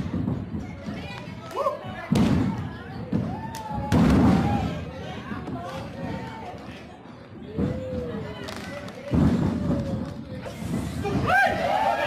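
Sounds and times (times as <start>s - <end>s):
spectators shouting: 11.0s - 12.0s.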